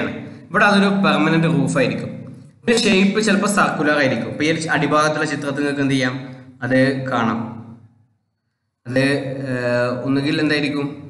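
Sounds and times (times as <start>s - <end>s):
man speaking: 0.0s - 7.6s, 8.8s - 11.0s.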